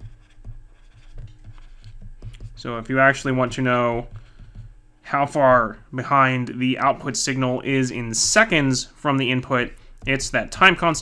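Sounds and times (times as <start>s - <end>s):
stylus scratching on tablet: 0.0s - 4.8s.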